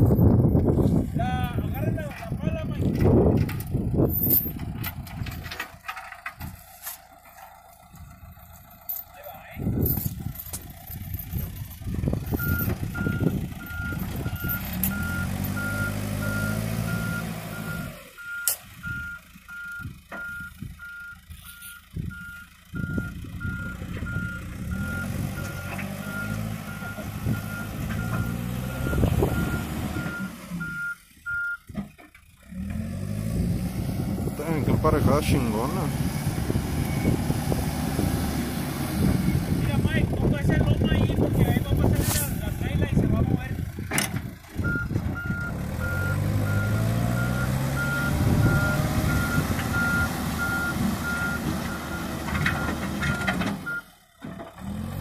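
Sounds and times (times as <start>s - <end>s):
diesel engine running under load: 0.0s - 55.0s
reverse alarm beeping: 12.4s - 31.7s, 44.6s - 53.9s.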